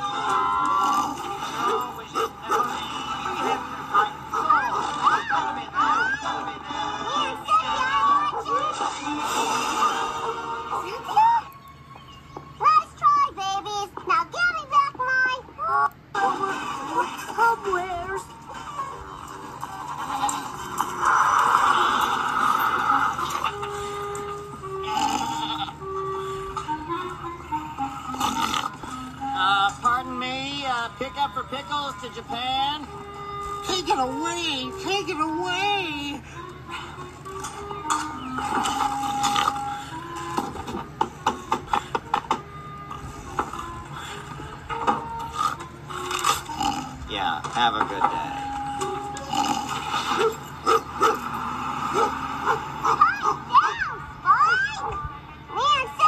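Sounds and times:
cartoon dog barking: 50.2 - 51.2, 51.9 - 54.0.

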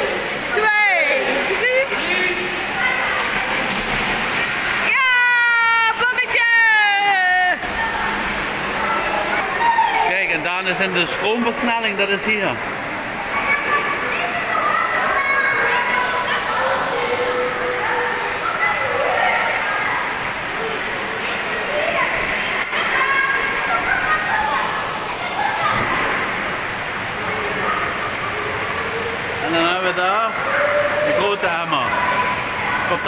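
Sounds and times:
water rushing: 0.0 - 33.0
echoing voices and shouts: 4.4 - 26.4.

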